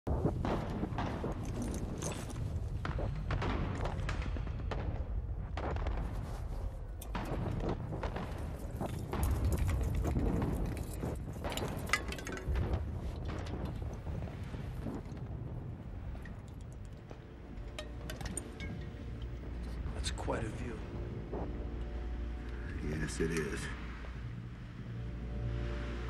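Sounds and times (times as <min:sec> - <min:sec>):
sharp cracks and knocks: 0:00.3 - 0:15.3.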